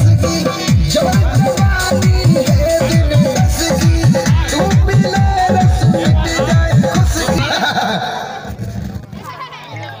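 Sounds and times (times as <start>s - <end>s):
dance music over sound system: 0.0s - 7.5s.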